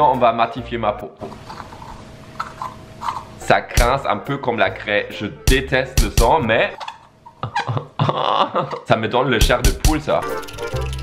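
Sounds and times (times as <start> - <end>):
face roller squeaking on skin: 6.8 - 7.7.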